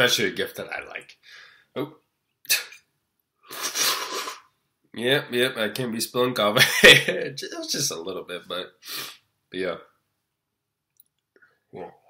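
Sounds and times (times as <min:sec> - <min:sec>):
man's breathy mouth noises: 0:03.4 - 0:04.5
hissing sputtering breath: 0:03.5 - 0:04.5.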